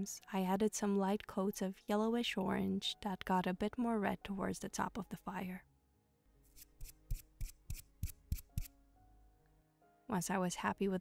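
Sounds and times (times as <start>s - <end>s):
paintbrush strokes: 6.4s - 8.7s.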